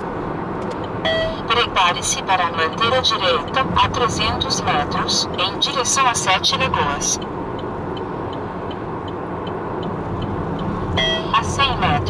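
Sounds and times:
car road and engine noise: 0:00.0 - 0:12.0
faint regular ticking: 0:07.2 - 0:10.8.

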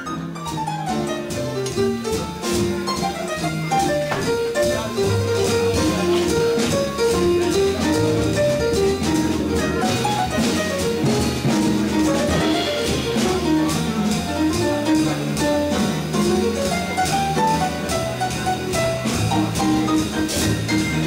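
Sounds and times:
double bass notes: 0:00.0 - 0:21.0
piano melody: 0:00.0 - 0:21.0
drum kit cymbal strokes: 0:01.2 - 0:21.0.

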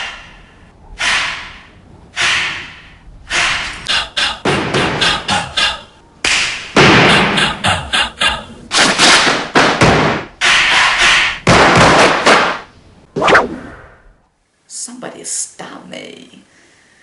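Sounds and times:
sharp hits and whooshes: 0:01.0 - 0:05.3, 0:08.7 - 0:14.1.

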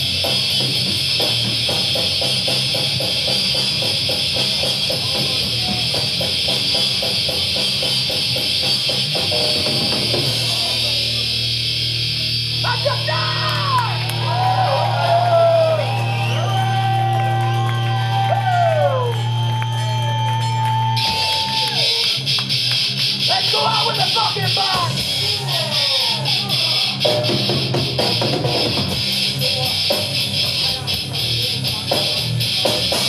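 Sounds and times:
live metal band playing: 0:00.0 - 0:14.1, 0:21.0 - 0:33.0.

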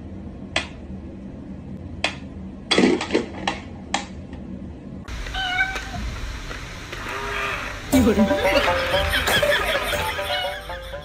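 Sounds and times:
cat meowing: 0:05.3 - 0:06.0.

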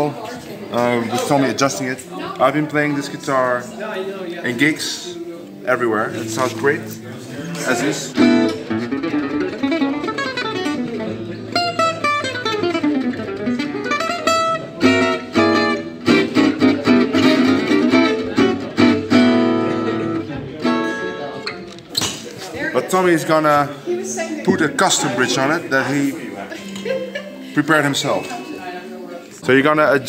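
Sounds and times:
acoustic guitar played with a pick: 0:04.4 - 0:22.3, 0:22.9 - 0:29.4.

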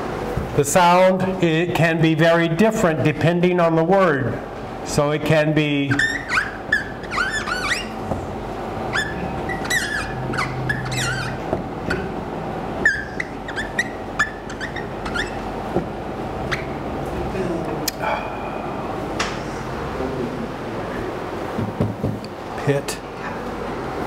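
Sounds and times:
marker squeaking on whiteboard: 0:05.9 - 0:12.2, 0:12.8 - 0:16.8.

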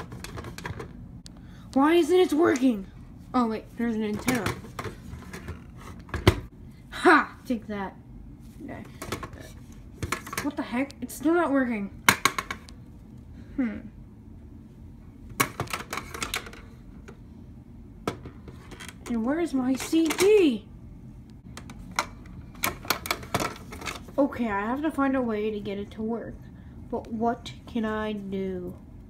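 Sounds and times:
low room noise: 0:00.0 - 0:29.0.

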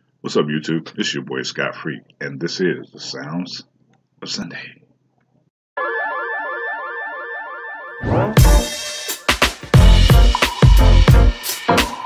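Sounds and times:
high synthesized whistle: 0:05.8 - 0:12.0
warbling electronic tone: 0:09.8 - 0:12.0.

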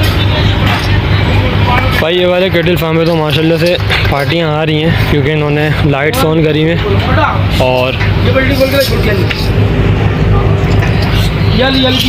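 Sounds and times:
indistinct voices: 0:00.0 - 0:12.0
loud low mechanical hum: 0:00.0 - 0:12.0.

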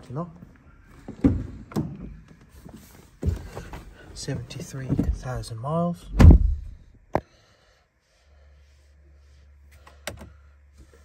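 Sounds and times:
car door opening thunks: 0:06.1 - 0:06.8.

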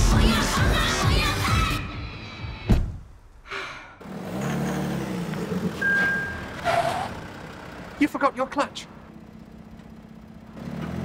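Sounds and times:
dashboard warning beep: 0:05.8 - 0:06.6.

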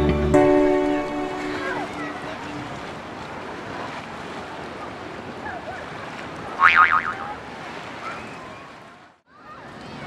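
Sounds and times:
wind: 0:00.0 - 0:10.0
water noise: 0:00.5 - 0:10.0
gull calling: 0:06.6 - 0:07.3.

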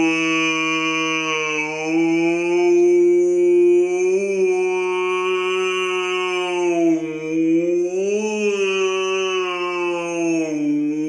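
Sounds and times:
man imitating whale call: 0:00.0 - 0:11.0.

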